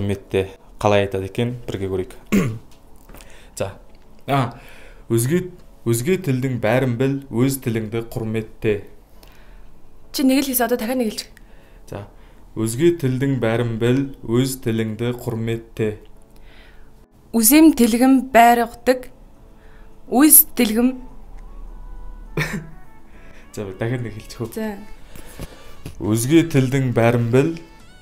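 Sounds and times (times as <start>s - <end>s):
faint background music: 0.0s - 28.0s
person coughing: 2.3s - 2.7s, 22.4s - 22.8s
person speaking: 20.1s - 21.1s, 22.3s - 27.9s.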